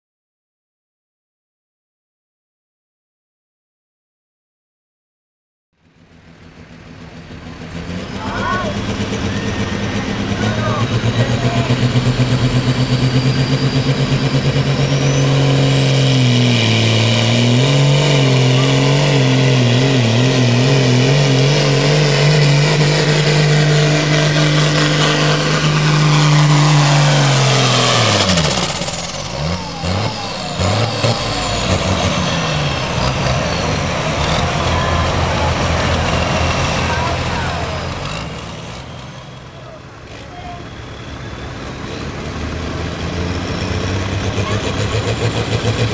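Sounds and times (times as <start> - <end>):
tractor engine pulsing: 6.0 - 45.9
faint rising whine: 6.1 - 17.0, 21.2 - 38.4.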